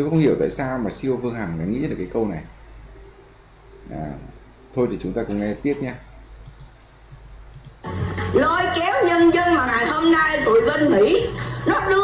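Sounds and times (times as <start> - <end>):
computer mouse clicks: 6.4 - 7.8.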